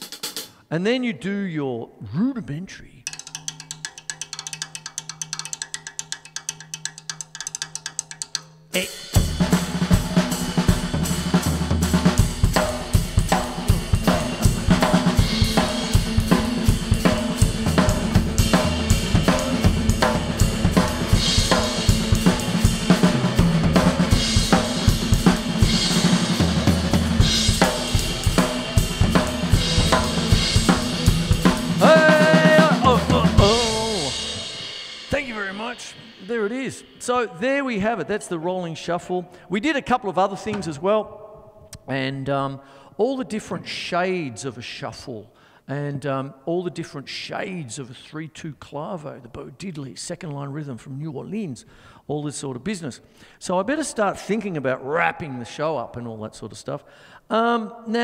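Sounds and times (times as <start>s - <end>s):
drum kit shuffle: 0.0s - 0.6s, 6.4s - 37.2s
person shouting: 31.8s - 34.2s.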